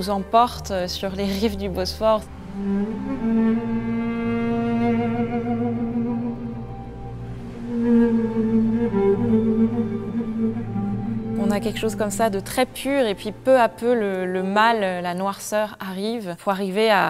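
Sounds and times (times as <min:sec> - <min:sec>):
cello long bowed notes: 0:00.0 - 0:15.3.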